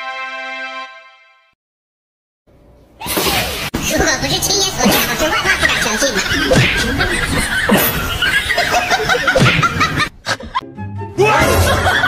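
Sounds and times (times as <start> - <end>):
music: 0.0 - 1.6, 10.6 - 12.0
people laughing and snickering: 4.7 - 10.6, 11.4 - 12.0.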